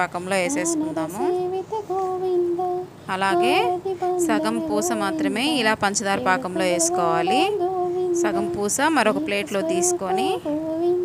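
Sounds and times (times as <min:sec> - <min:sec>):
person singing long high notes: 0:00.4 - 0:11.0.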